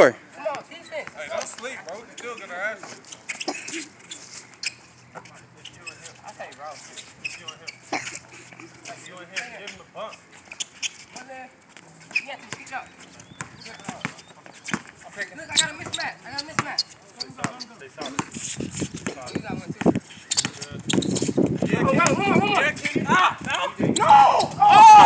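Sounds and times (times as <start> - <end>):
players calling out: 11.8 - 25.0
basketball bouncing on hard court: 15.5 - 16.8, 17.4 - 18.3, 22.0 - 22.3.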